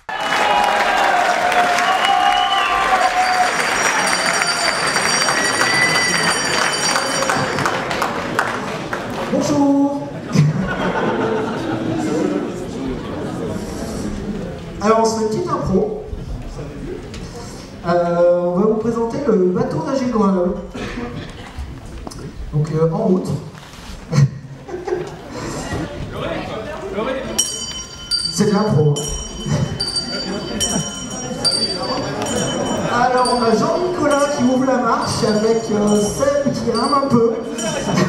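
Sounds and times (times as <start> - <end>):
audience clapping: 0.0 - 9.6
voices talking and calling out: 25.3 - 38.0.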